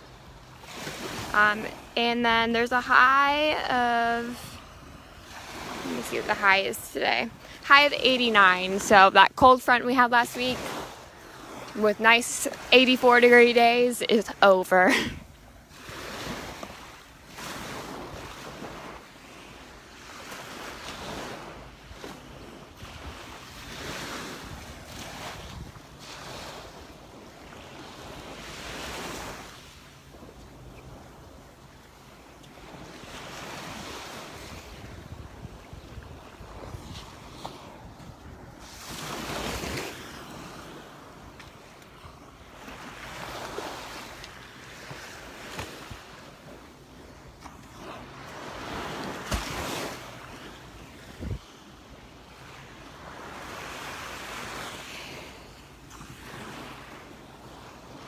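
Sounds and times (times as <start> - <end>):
small waves breaking on sand: 0.0 - 58.0
wind buffeting microphone: 32.6 - 40.7, 51.0 - 51.5.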